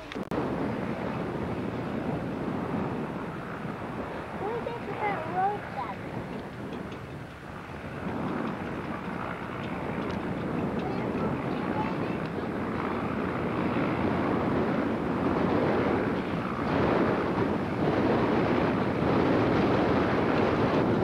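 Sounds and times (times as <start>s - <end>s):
blimp engines and propellers: 0.0s - 21.0s
wind noise on microphone: 0.0s - 21.0s.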